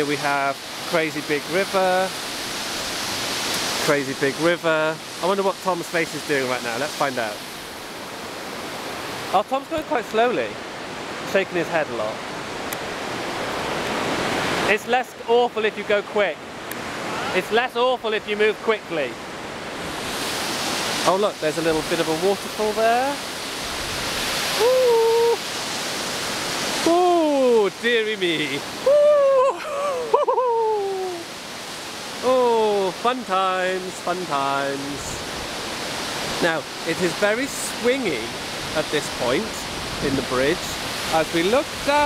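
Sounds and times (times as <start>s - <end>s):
river water roaring: 0.0s - 42.0s
person exclaiming ooh: 24.6s - 25.4s, 26.8s - 27.6s, 28.8s - 31.3s.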